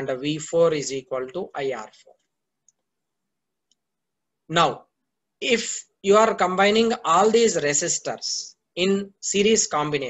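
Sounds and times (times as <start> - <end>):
man speaking: 0.0 - 2.2, 4.4 - 10.0.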